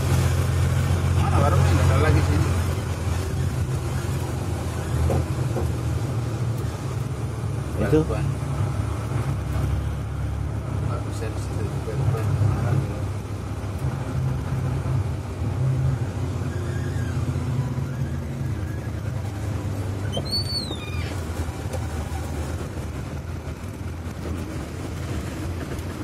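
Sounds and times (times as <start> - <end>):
vehicle engine and road noise: 0.0 - 26.0
brief high squeak: 16.4 - 18.9, 20.0 - 21.3.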